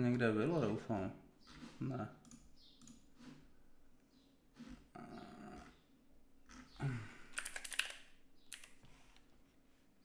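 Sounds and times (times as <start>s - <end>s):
computer keyboard typing: 7.3s - 8.8s.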